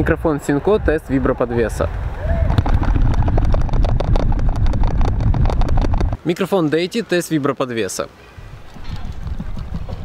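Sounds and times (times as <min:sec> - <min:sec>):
microphone handling rumble: 0:01.8 - 0:06.2, 0:08.4 - 0:10.0
small knocks and clicks: 0:02.5 - 0:06.2.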